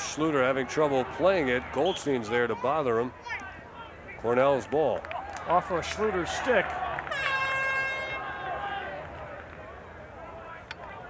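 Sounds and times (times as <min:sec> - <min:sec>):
steady horn blast: 0:07.0 - 0:08.8.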